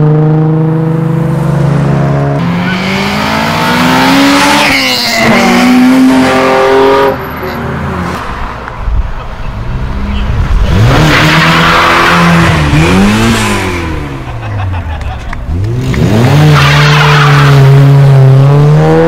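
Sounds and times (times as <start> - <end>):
car engine revving hard: 0.0 - 7.2, 10.5 - 14.4, 15.5 - 19.0.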